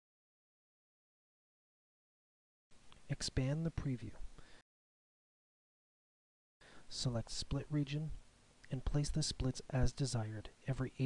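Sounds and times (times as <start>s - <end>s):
person narrating: 3.0s - 4.3s, 6.9s - 11.0s.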